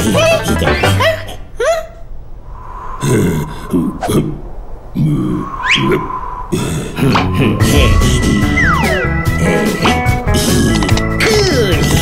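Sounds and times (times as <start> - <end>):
rising whistle-like glide: 2.4 - 3.5, 5.4 - 6.5, 7.7 - 9.3.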